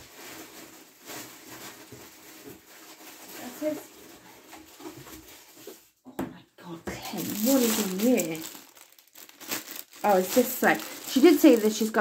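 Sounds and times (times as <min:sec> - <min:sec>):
packaging rustling: 0:00.0 - 0:05.8, 0:07.1 - 0:12.0.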